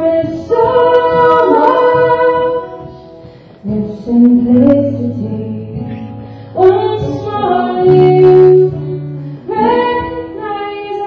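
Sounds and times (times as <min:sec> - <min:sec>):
acoustic guitar: 0:00.0 - 0:11.0
woman singing folk song: 0:00.0 - 0:11.0.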